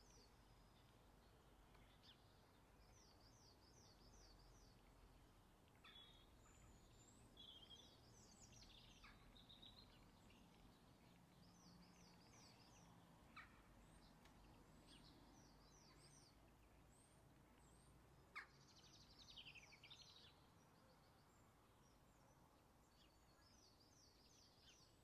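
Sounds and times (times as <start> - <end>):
faint birdsong: 0.0 - 25.0.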